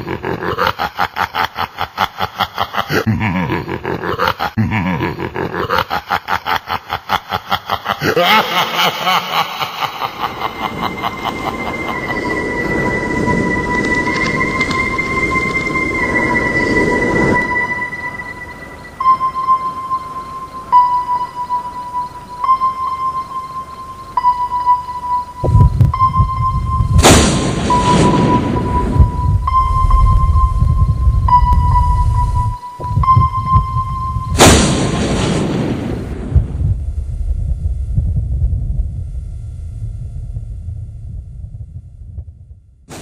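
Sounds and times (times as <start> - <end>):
sustained high electronic tone: 9.8 - 42.8
deep rumble: 10.3 - 19.1, 25.4 - 42.9
loud whooshing crash: 26.8 - 29.8, 34.3 - 40.8.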